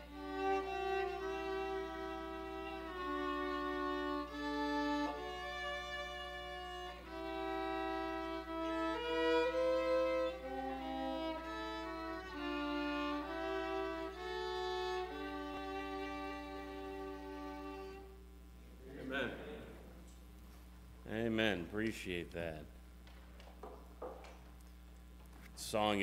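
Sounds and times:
violins playing slow melody: 0.0s - 18.4s.

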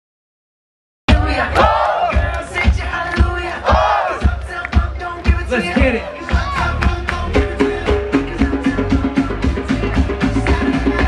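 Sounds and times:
crowd shouting and cheering: 1.1s - 11.0s
live music with kick drum beat: 1.1s - 11.0s.

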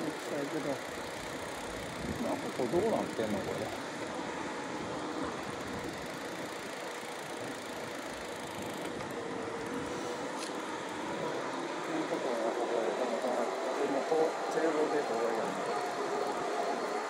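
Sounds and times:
bicycle tyres on asphalt: 0.0s - 17.0s
faint steady hum: 0.0s - 17.0s.

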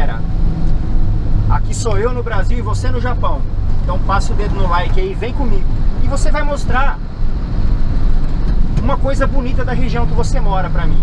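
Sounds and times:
road noise: 0.0s - 11.0s
truck engine running: 0.0s - 11.0s.

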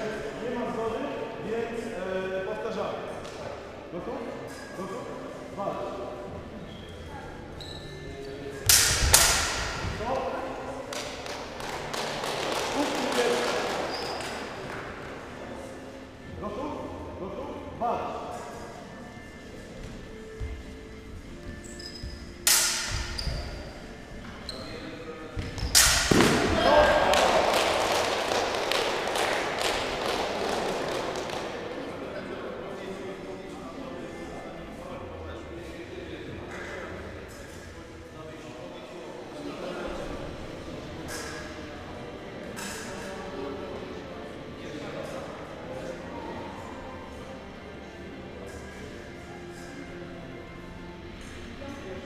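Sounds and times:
steel sabres clashing: 22.4s - 23.2s, 25.7s - 26.3s.

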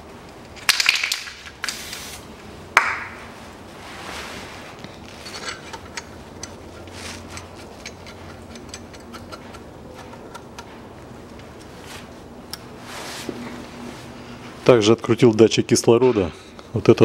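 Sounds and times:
wrench clicking on metal: 7.3s - 10.7s.

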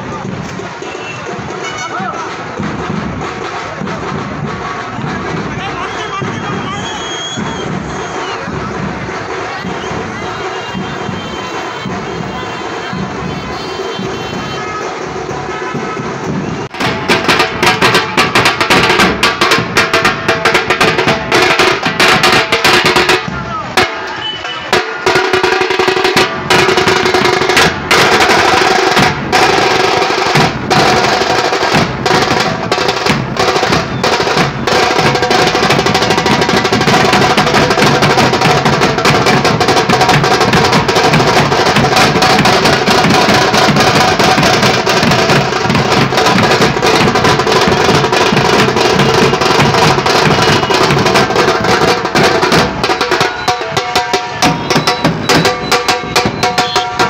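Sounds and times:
street drum band drumming: 0.0s - 57.0s.

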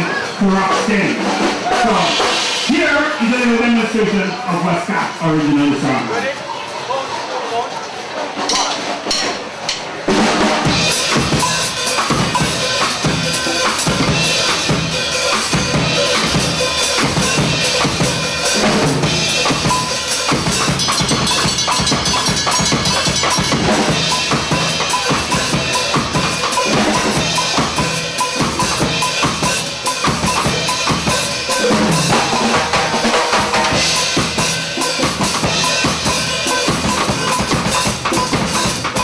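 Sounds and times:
cymbals: 0.0s - 4.4s, 8.4s - 39.0s
drum kit playing ska beat: 0.0s - 7.3s, 8.2s - 39.0s.

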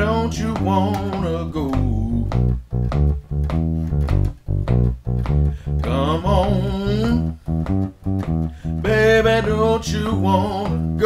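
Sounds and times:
electric bass guitar line: 0.0s - 11.0s.

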